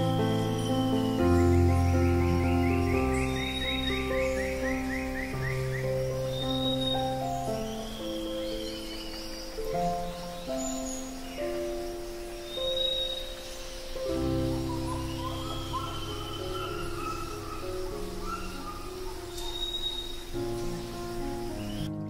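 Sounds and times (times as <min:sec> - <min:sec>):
bird whistled calls: 0:00.0 - 0:21.9
bird chirping: 0:00.0 - 0:22.0.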